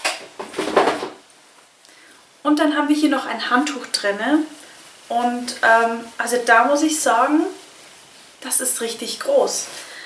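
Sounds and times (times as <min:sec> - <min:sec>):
towel rustling: 0:00.0 - 0:10.0.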